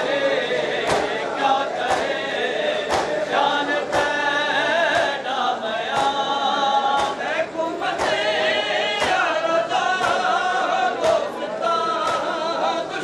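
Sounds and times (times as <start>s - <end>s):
men chanting together: 0.0s - 13.0s.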